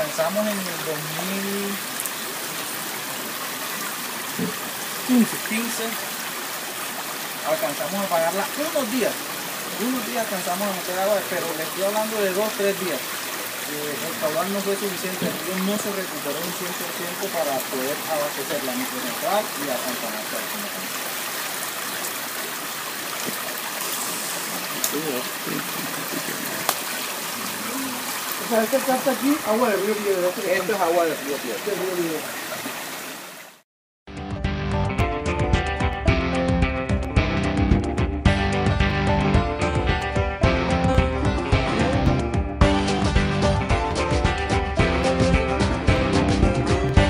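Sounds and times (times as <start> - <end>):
river water rushing through channel: 0.0 - 33.6
faint voices: 27.4 - 28.4.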